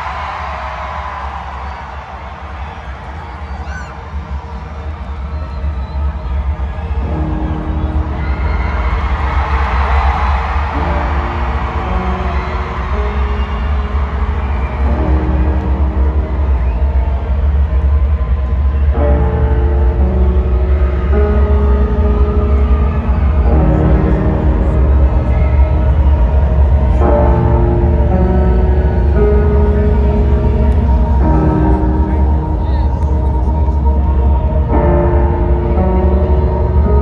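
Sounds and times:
crowd cheering: 0.0 - 37.0
slow instrumental held chords: 0.0 - 37.0.

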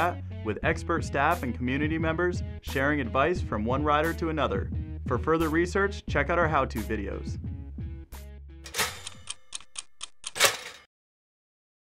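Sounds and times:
mechanical timer ticking: 8.7 - 10.9.

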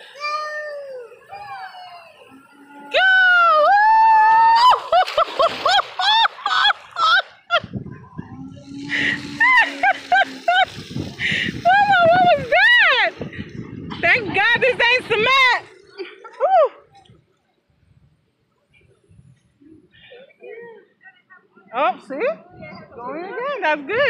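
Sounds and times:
water splashing: 0.0 - 19.0
toddler squealing and shrieking: 0.1 - 4.8.

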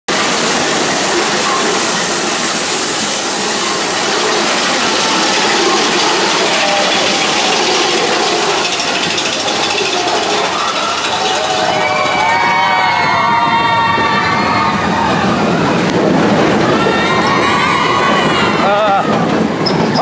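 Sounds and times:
roller coaster car rattling on track: 0.1 - 20.0.

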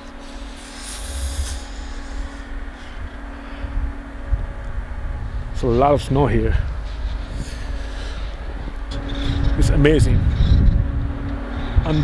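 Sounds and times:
faint steady hum: 0.0 - 12.0
wind buffeting microphone: 0.0 - 12.0
brief hiss: 0.2 - 3.0.

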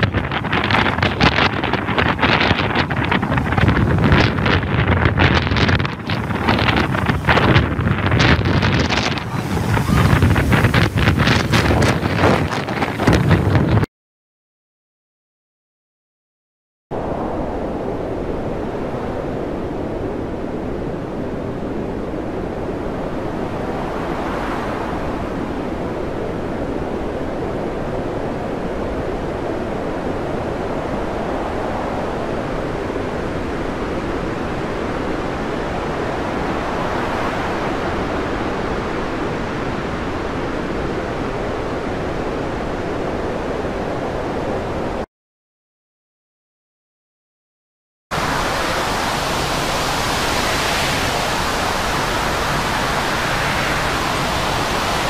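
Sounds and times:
waves breaking: 0.0 - 13.9, 17.4 - 45.0, 48.1 - 55.0
wind: 0.0 - 13.9, 16.9 - 45.1, 48.1 - 55.0.

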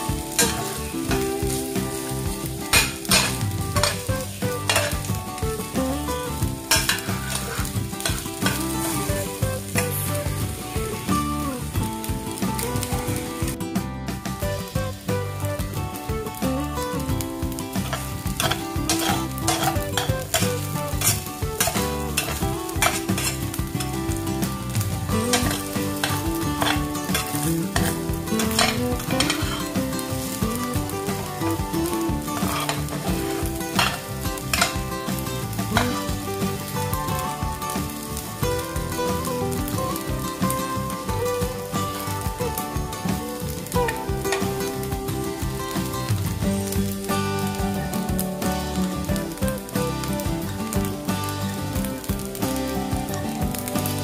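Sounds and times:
rice sizzling in a pan: 0.0 - 54.0
metal spatula scraping a pan: 0.3 - 0.8, 2.7 - 5.1, 6.7 - 9.0, 17.8 - 23.9, 25.1 - 30.4, 32.3 - 36.1.

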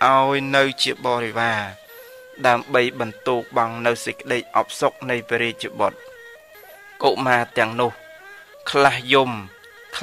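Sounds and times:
man preaching in sing-song voice: 0.0 - 6.0, 6.8 - 10.0.

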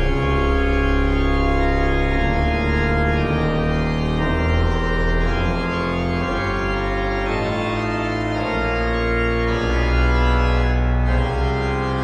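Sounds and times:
deep organ pedal bass: 0.0 - 12.0
digital organ chords: 0.0 - 12.0.

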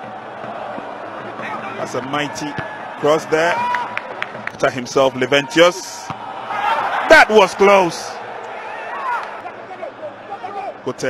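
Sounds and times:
stadium background noise: 0.0 - 11.0.

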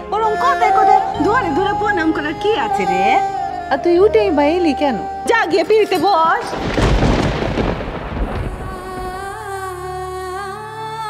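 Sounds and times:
music with long held tones: 0.0 - 11.0
thunder-like crash: 6.4 - 9.6.

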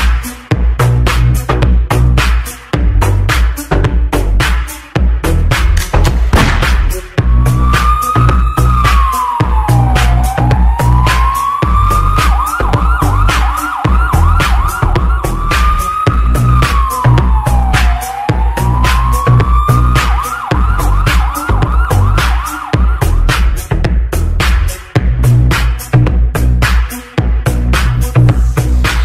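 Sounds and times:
heavy bass: 0.0 - 29.0
kick drum: 0.0 - 29.0
siren-like synth wail: 7.2 - 23.6.

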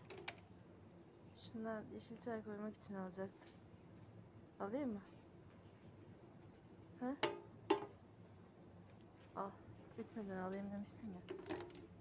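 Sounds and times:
woman speaking: 1.4 - 3.5, 4.6 - 5.1, 7.0 - 7.2, 9.4 - 11.4.

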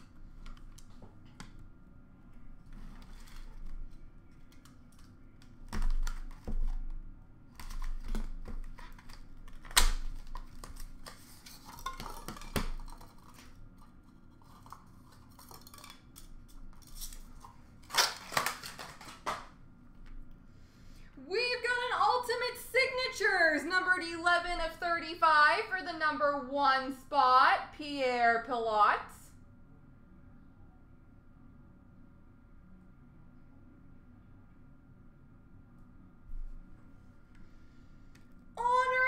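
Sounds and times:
cards rustling: 14.4 - 19.5.

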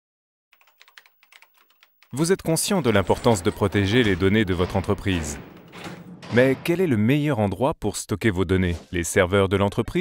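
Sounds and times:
typing on computer keyboard: 0.6 - 2.2.

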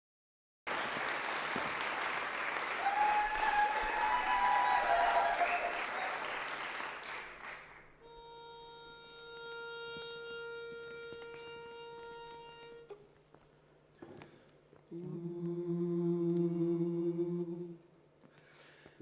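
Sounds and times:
audience applause and cheering: 0.7 - 7.9.

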